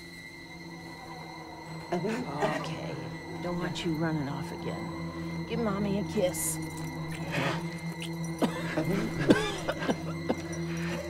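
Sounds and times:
low steady drone: 0.0 - 11.0.

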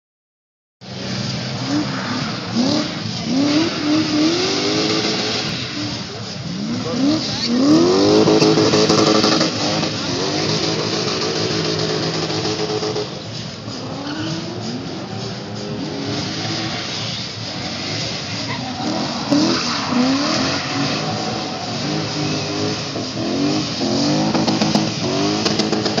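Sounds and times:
car engines revving: 0.8 - 26.0
tyres sliding and squealing: 1.6 - 26.0.

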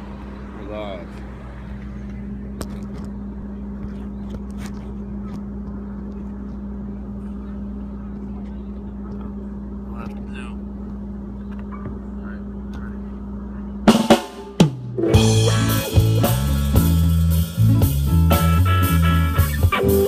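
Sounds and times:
steady electrical hum: 0.0 - 20.0.

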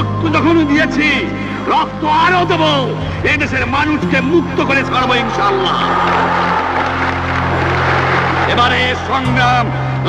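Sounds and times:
crowd cheering and clapping: 4.6 - 10.0.

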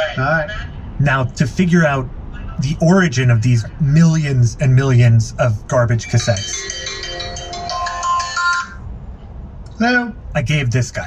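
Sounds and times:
phone ringtone melody: 6.0 - 8.9.

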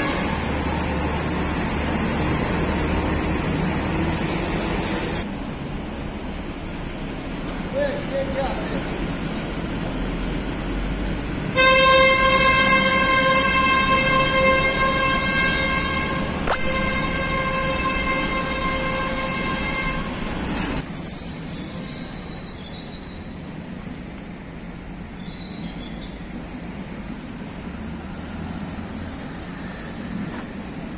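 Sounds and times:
road noise rumble: 0.0 - 30.9
vehicle horn held: 11.6 - 20.1
sharp click: 16.4 - 16.7.

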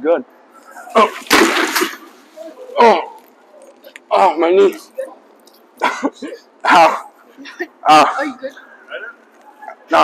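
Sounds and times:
man coughing: 5.8 - 8.4.

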